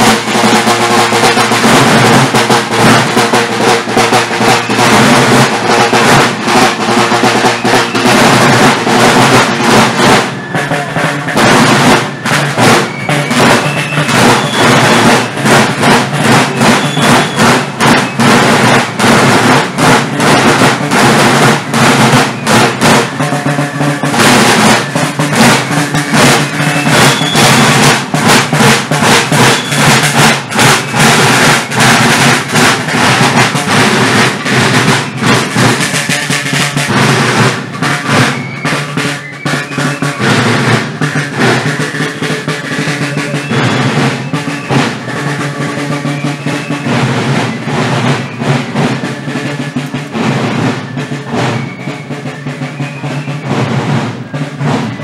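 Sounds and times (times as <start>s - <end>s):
marching drum corps: 0.0s - 55.0s.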